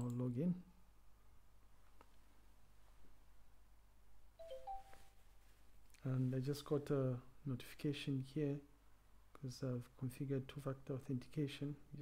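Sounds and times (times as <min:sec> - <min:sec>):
phone notification chime: 0:04.4 - 0:05.2.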